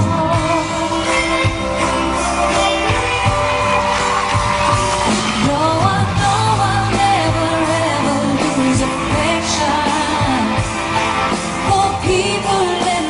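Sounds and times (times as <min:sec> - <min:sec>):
live band with steady beat: 0:00.0 - 0:13.0
woman singing wordless run: 0:05.3 - 0:10.7, 0:11.6 - 0:13.0.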